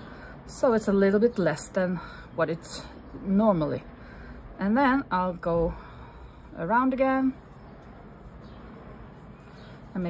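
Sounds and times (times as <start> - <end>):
woman speaking: 0.5 - 4.0, 4.6 - 5.9, 6.5 - 7.4.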